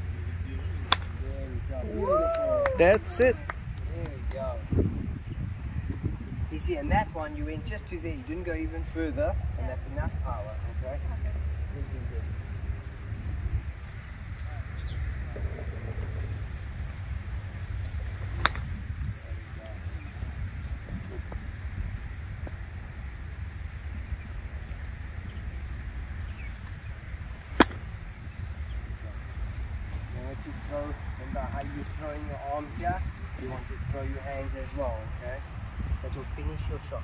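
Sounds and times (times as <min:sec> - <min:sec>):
golf club striking ball: 0:00.8 - 0:01.2, 0:18.3 - 0:18.8, 0:27.5 - 0:28.0.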